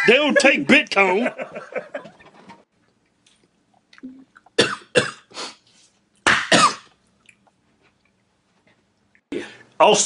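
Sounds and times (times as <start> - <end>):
person coughing: 4.6 - 5.3, 6.2 - 6.9.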